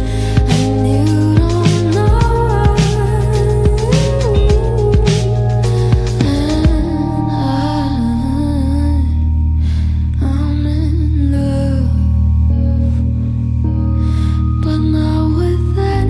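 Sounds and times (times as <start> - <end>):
deep held bass: 0.0 - 16.0
keyboard chords: 0.0 - 16.0
woman singing a ballad: 0.0 - 16.0.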